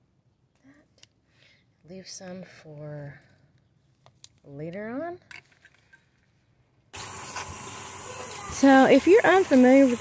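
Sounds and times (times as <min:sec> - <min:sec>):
tap water running into colander: 0:07.0 - 0:10.0.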